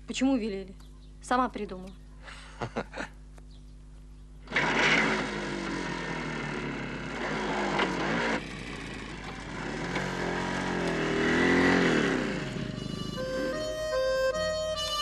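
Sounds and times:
small motorcycle engine revving: 4.4s - 15.0s.

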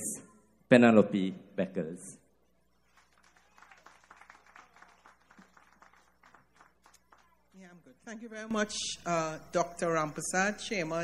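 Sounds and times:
distant audience applause: 2.8s - 7.8s.

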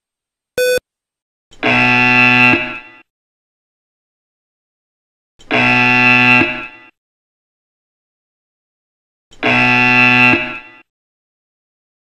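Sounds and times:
buzzer-like electronic tones: 0.6s - 0.8s, 1.6s - 3.0s, 5.4s - 7.0s, 9.4s - 10.9s.

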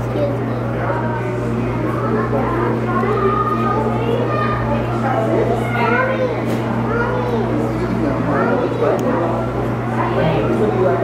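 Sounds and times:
children's voices: 0.0s - 11.0s
crowd chatter: 0.0s - 11.0s
steady low hum: 0.0s - 11.0s.

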